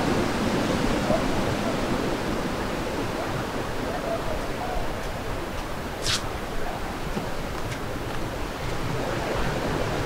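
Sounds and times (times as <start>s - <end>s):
sea surf: 0.0s - 10.0s
wind: 0.0s - 10.0s
short sharp scrape: 6.0s - 6.3s.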